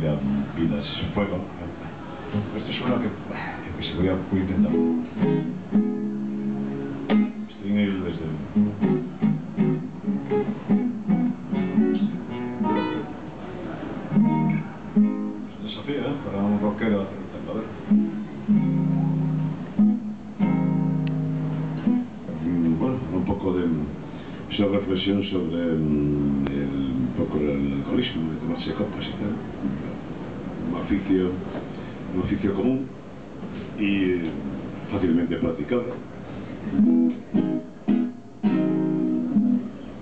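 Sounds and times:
acoustic guitar strumming: 0:04.6 - 0:07.6, 0:08.4 - 0:13.3, 0:14.1 - 0:15.6, 0:17.8 - 0:22.3, 0:36.7 - 0:40.0.

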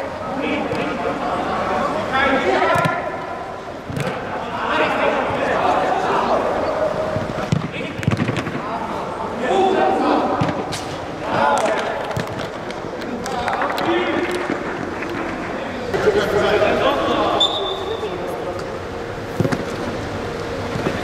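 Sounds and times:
players calling out in a hall: 0:00.0 - 0:21.0.

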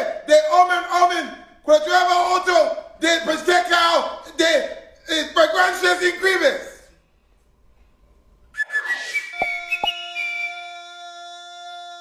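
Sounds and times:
whistled tune: 0:08.5 - 0:10.8.

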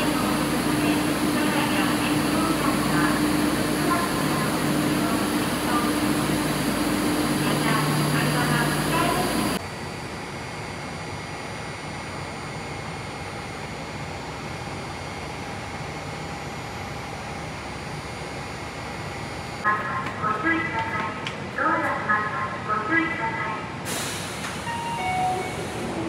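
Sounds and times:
subway train humming: 0:00.0 - 0:26.0.

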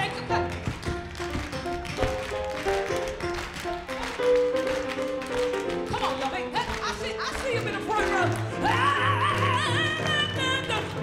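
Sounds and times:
rhythmic hand-clapping: 0:00.0 - 0:11.0.

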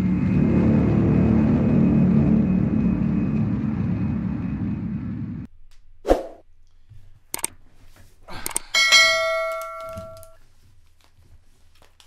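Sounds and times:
short swish: 0:06.0 - 0:06.4
notification bell ding: 0:08.8 - 0:10.4.

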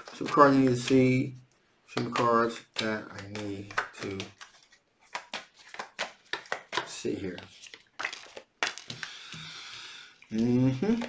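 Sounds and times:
cards snapping: 0:02.0 - 0:09.4.

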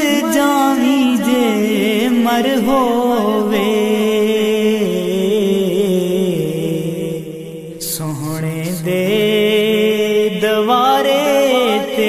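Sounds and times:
man singing devotional song: 0:00.0 - 0:12.0.

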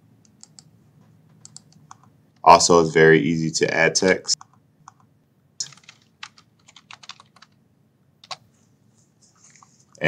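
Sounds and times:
faint keyboard keystrokes: 0:01.3 - 0:02.1.

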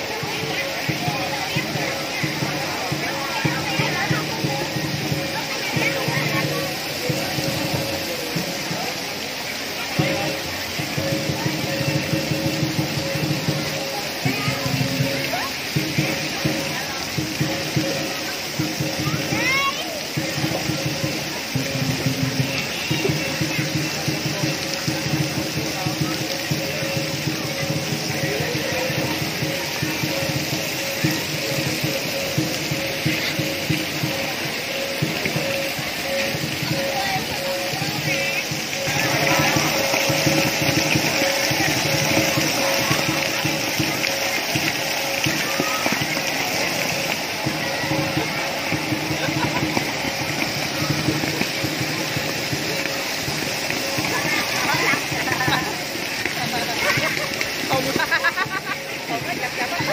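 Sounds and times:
voices: 0:00.0 - 0:59.9
water jets spraying into pool: 0:00.0 - 0:59.9.

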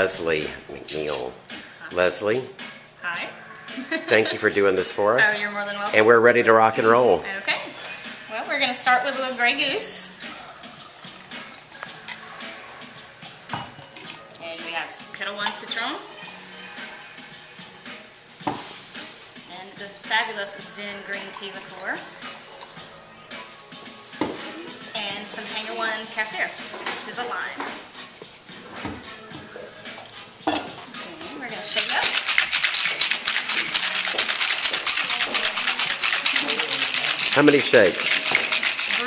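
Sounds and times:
liquid pouring into metal shaker: 0:09.8 - 0:14.4, 0:20.5 - 0:23.6, 0:31.6 - 0:39.0
glass bottle knock: 0:30.4 - 0:30.8.

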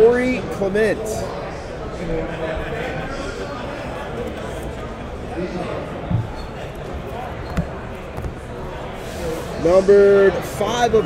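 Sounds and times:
background hubbub with faint voices: 0:00.0 - 0:11.0.

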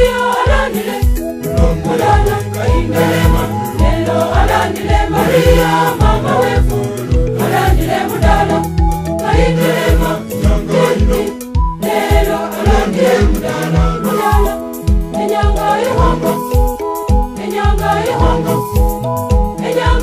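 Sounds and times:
gospel choir singing: 0:00.0 - 0:20.0
low drum beat: 0:01.5 - 0:11.7.

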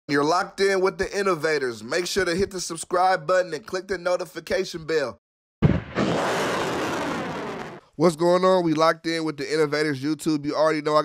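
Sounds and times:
rocket launch blast: 0:05.6 - 0:07.8.

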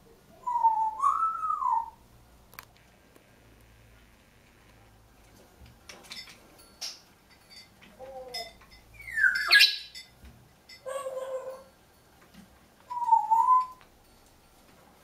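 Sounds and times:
parrot calling: 0:00.4 - 0:02.0, 0:08.1 - 0:10.0, 0:10.8 - 0:11.7
parrot whistle: 0:00.4 - 0:02.0, 0:08.9 - 0:10.0, 0:12.9 - 0:13.8.

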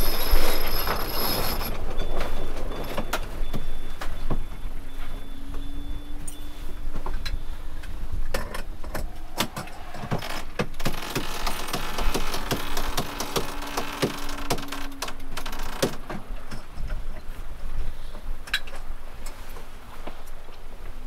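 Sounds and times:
faint high electronic beeping: 0:00.0 - 0:07.6
low hum: 0:00.0 - 0:18.4.

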